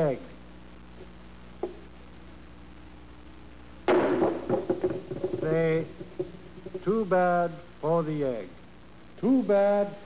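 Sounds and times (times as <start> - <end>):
small knocks: 3.9 - 6.9.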